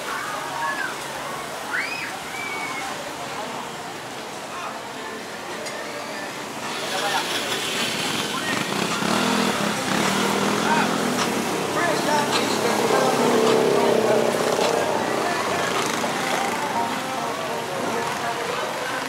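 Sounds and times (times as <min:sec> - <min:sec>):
people's voices: 0:00.0 - 0:19.0
motorcycles driving past: 0:06.6 - 0:16.8.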